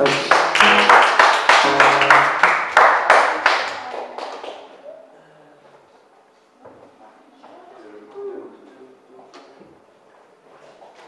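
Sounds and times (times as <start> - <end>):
acoustic guitar strumming: 0.0 - 2.5.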